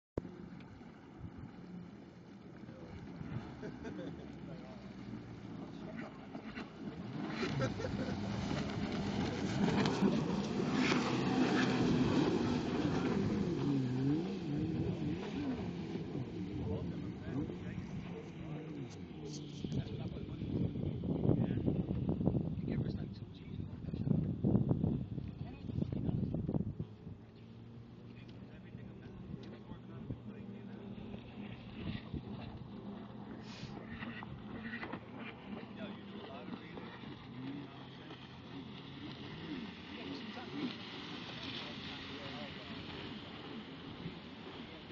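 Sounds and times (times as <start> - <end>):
jet ski engines: 0.2 - 44.9
faint voices: 27.0 - 44.9.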